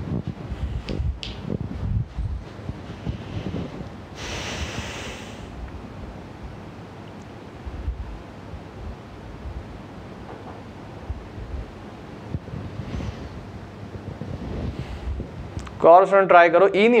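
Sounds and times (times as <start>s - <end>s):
room background rumble and hiss: 0.0s - 17.0s.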